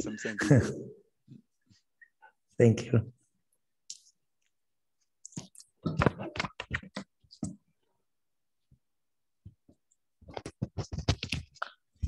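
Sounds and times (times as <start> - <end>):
microphone handling clicks and knocks: 5.3 - 7.6, 10.2 - 12.0.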